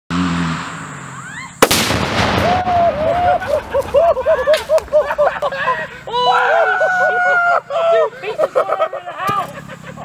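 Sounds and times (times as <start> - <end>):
loud explosion with rumbling tail: 1.6 - 3.8
man laughing: 3.0 - 10.0.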